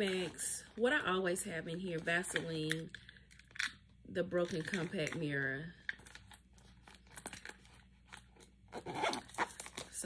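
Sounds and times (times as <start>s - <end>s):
plastic items clicking and rustling: 4.4s - 8.5s.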